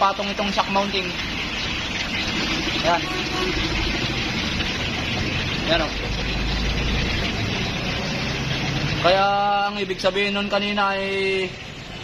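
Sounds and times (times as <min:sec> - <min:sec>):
motor vehicle drone: 0:01.0 - 0:09.2.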